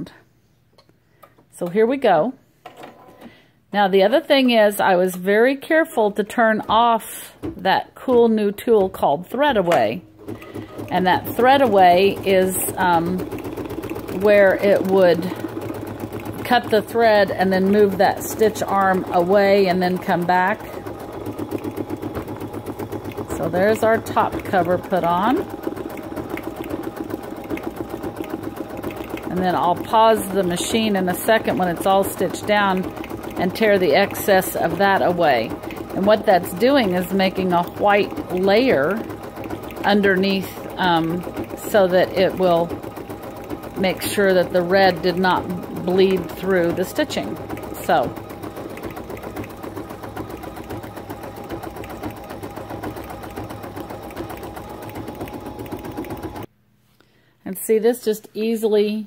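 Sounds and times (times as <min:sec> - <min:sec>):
embroidery machine stitching: 0:06.3 - 0:56.5.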